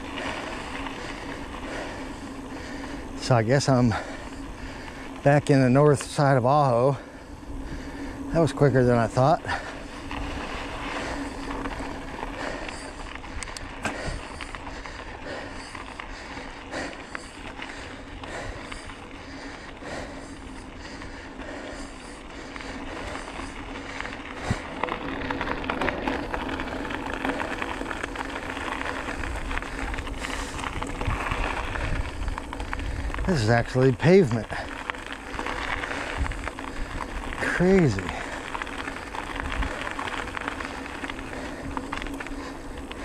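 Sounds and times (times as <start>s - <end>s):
steady low hum: 0.0s - 33.8s
bicycle tyres rolling on gravel: 0.0s - 43.0s.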